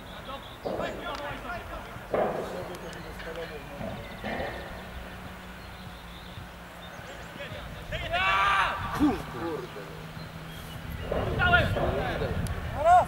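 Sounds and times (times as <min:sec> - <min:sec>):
open-air background noise: 0:00.0 - 0:13.0
steady low hum: 0:00.0 - 0:13.0
people shouting on a pitch: 0:07.9 - 0:09.7.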